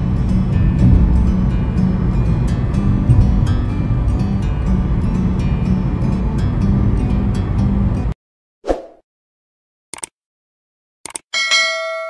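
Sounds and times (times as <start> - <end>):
double mouse click: 11.0 - 11.2
short click: 11.0 - 11.2
bright bell ding: 11.4 - 12.0.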